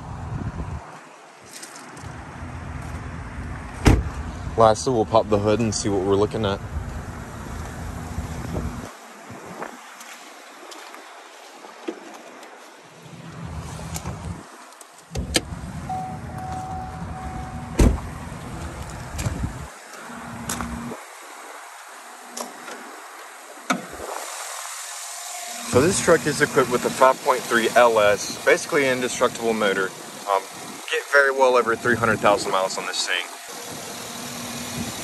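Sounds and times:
low rumbling handling noise: 15.1s - 19.7s
short beeps: 15.9s - 17.7s
car door and hood latch clicks: 17.7s - 18.1s.

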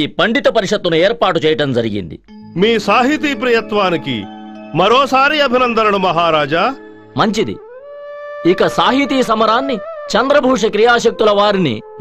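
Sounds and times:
held musical note: 2.3s - 10.7s
man's voice: 2.6s - 7.8s, 8.4s - 12.0s.

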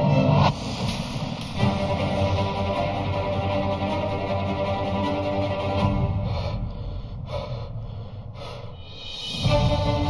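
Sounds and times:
low rumble: 0.0s - 10.0s
music: 0.0s - 10.0s
person breathing heavily: 5.8s - 10.0s.

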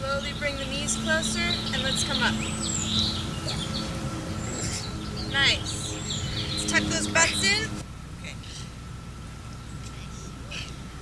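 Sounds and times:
small birds chirping: 0.0s - 7.8s
low background rumble: 0.0s - 11.0s.

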